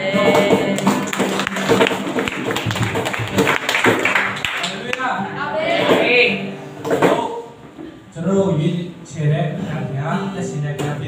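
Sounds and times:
person singing: 0.0s - 1.8s
acoustic guitars strumming: 0.0s - 11.0s.

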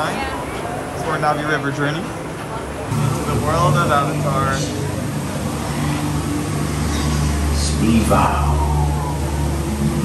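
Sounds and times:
low hum and hiss: 0.0s - 10.0s
held low tones: 2.9s - 10.0s.

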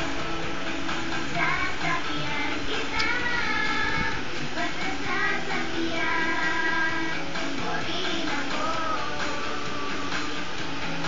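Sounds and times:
backing music through tv speaker: 0.0s - 11.0s
child singing: 1.3s - 10.4s.

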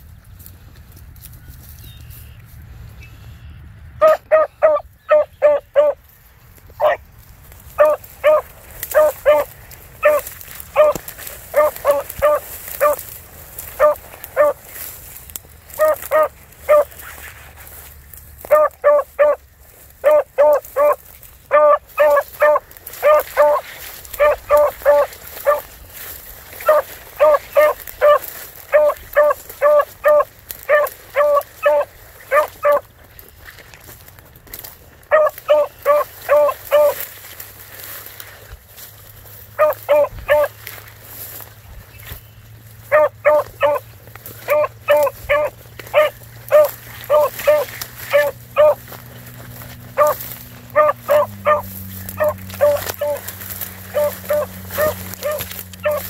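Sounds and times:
beagle baying: 4.0s - 6.0s, 6.8s - 7.0s, 7.7s - 15.0s, 15.7s - 17.2s, 18.4s - 33.0s, 35.0s - 37.1s, 39.5s - 40.6s, 42.8s - 56.0s.

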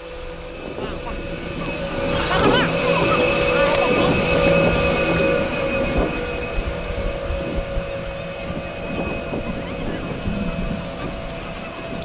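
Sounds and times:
steady machine hum: 0.0s - 12.0s
wind rumbling on microphone: 0.0s - 12.0s.

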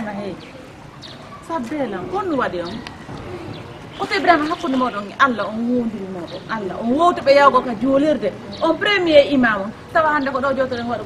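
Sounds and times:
woman talking: 1.4s - 2.9s, 4.0s - 11.0s.

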